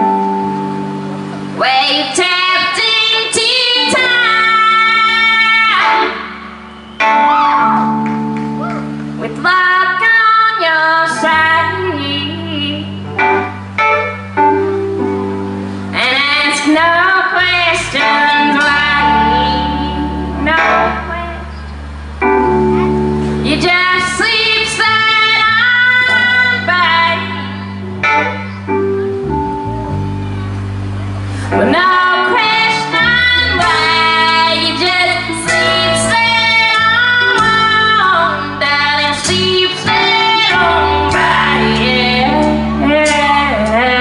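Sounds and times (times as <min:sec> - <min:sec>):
band playing slow song: 0:00.0 - 0:44.0
sustained keyboard and bass: 0:00.0 - 0:44.0
woman singing: 0:01.6 - 0:06.4, 0:09.2 - 0:13.0, 0:16.0 - 0:21.4, 0:23.4 - 0:27.8, 0:31.5 - 0:44.0.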